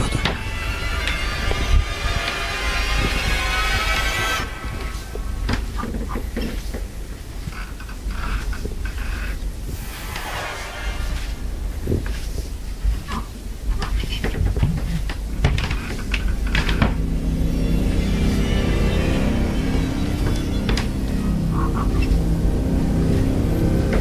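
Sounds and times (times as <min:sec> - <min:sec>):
deep low rumble: 0:00.0 - 0:24.0
dense droning texture: 0:00.0 - 0:24.0.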